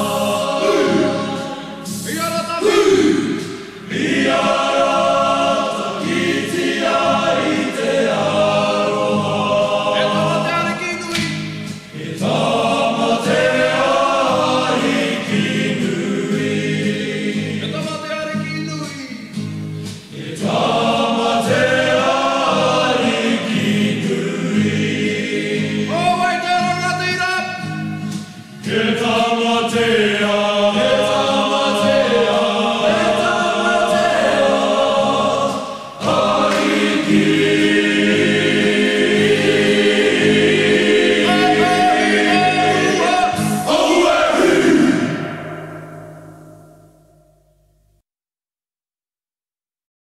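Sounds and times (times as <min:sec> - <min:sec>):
choir singing: 0:00.0 - 0:17.9, 0:20.1 - 0:26.7, 0:27.6 - 0:47.4.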